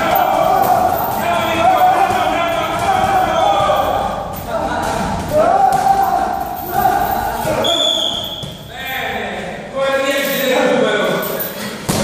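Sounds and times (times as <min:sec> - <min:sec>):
voices in room: 0:00.0 - 0:12.0.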